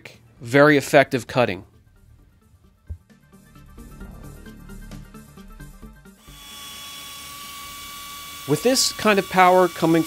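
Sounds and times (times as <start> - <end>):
background music: 0.0 - 8.4
pneumatic polisher air hiss and whine: 6.2 - 10.0.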